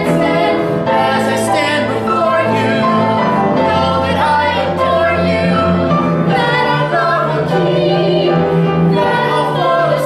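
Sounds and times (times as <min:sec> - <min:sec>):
man and woman singing a duet: 0:00.0 - 0:05.7.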